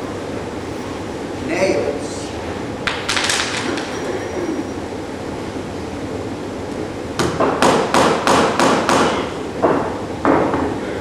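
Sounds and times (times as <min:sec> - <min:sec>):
hammer striking wooden board: 0:07.2 - 0:10.7.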